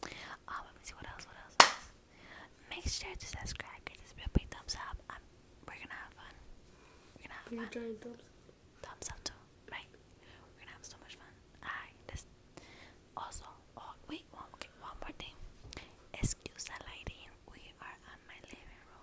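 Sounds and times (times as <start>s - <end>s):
woman whispering: 0.2s - 1.6s, 2.6s - 6.4s, 7.2s - 7.9s, 8.8s - 12.3s, 13.2s - 15.4s, 16.1s - 19.0s.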